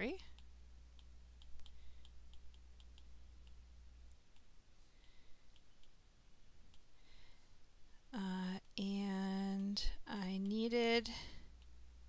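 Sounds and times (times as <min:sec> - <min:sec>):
low steady hum: 0:00.0 - 0:12.0
stylus clicking on glass screen: 0:00.2 - 0:06.0.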